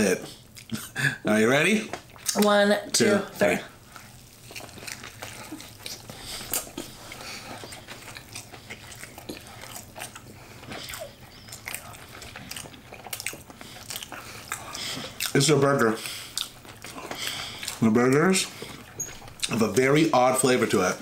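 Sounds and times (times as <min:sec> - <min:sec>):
people chewing food: 0:00.0 - 0:21.0.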